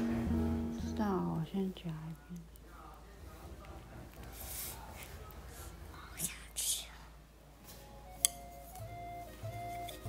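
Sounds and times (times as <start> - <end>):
gentle background music: 0.0 - 2.0, 7.6 - 10.0.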